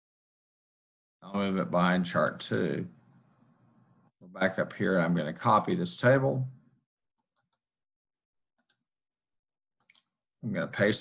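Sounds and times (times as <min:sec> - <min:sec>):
computer mouse clicks: 0:07.2 - 0:07.6, 0:08.6 - 0:08.9, 0:09.8 - 0:10.2.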